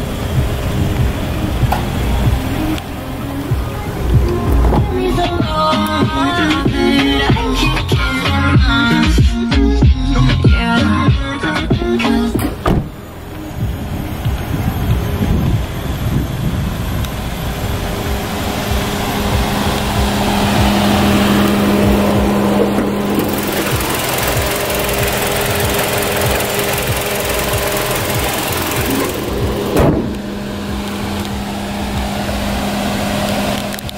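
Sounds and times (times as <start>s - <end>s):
car engine idling: 0.0s - 33.9s.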